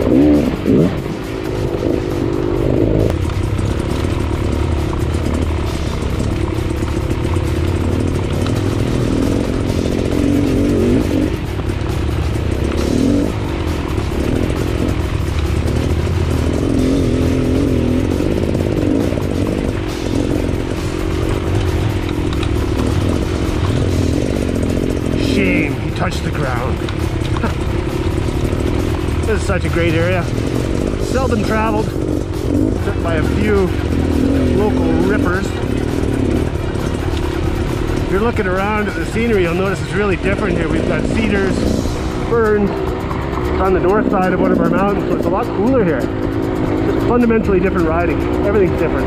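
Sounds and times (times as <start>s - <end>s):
dirt bike engine revving: 0.0s - 49.0s.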